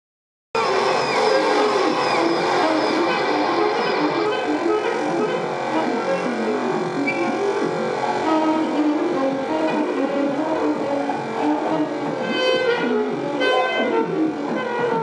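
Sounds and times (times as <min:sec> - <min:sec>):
tenor saxophone: 0:00.6 - 0:15.0
free improvised music: 0:02.5 - 0:15.0.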